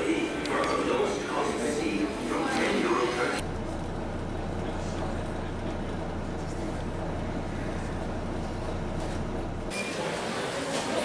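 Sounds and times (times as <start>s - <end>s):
voices: 0.0s - 3.4s
traffic noise: 0.0s - 11.0s
vehicle engine running: 3.4s - 9.7s.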